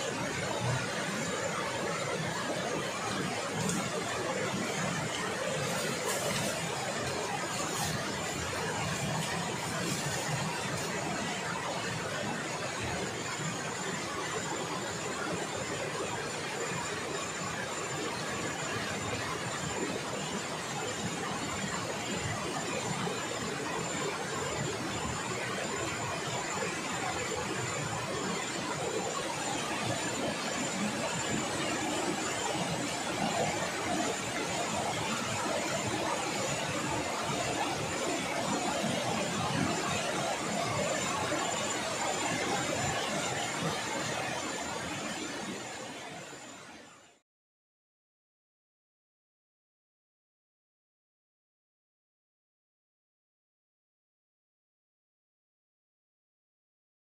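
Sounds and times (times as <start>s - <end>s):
thin high whine: 0.0s - 46.9s
river rushing: 0.1s - 12.3s.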